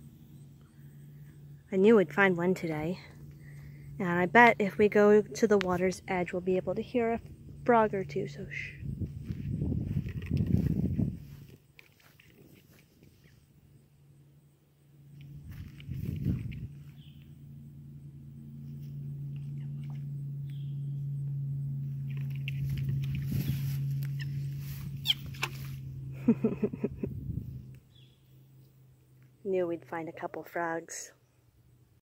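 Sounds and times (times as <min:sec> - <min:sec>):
steady low hum: 0:00.0 - 0:32.0
frogs calling: 0:21.9 - 0:25.7.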